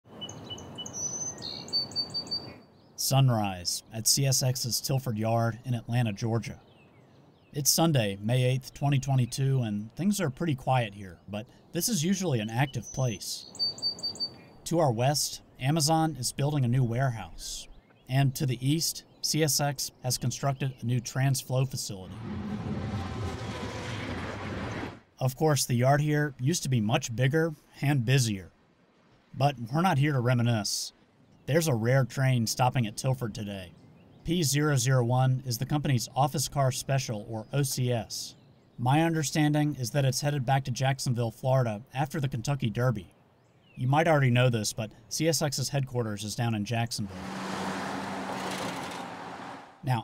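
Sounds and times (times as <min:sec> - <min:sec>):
songbirds chirping: 0:00.0 - 0:22.2, 0:25.1 - 0:50.0
low rumble with hiss: 0:21.6 - 0:36.8
low background rumble: 0:22.1 - 0:25.1.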